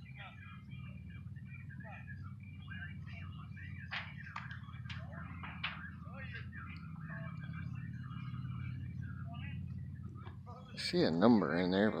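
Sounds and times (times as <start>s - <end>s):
birds chirping: 0.0s - 12.0s
low steady rumble: 0.0s - 12.0s.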